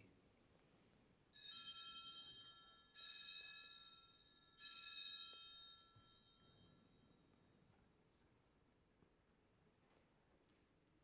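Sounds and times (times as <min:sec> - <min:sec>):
altar bells ringing: 0:01.4 - 0:07.5.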